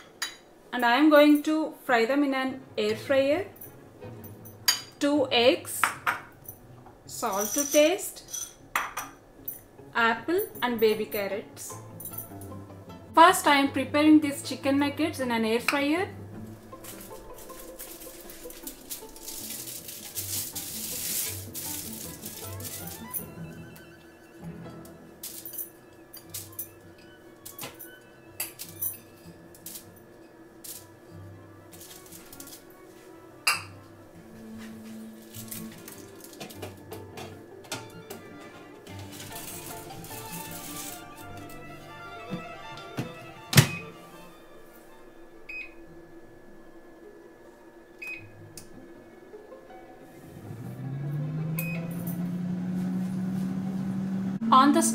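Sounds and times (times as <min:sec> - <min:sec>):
background music: 0:00.0 - 0:54.9
aluminium foil crinkling: 0:16.8 - 0:23.2, 0:31.7 - 0:32.7, 0:35.2 - 0:36.6, 0:38.9 - 0:41.3
oven door shutting: 0:43.0 - 0:44.0.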